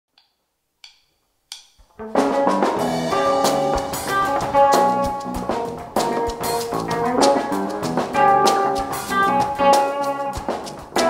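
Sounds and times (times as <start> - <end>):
drumstick clicks: 0.1 - 2.0
drums playing: 2.0 - 11.0.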